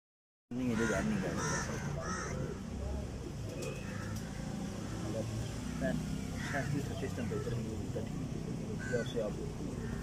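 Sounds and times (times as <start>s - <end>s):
harsh caw-like bird calls: 0.5s - 10.0s.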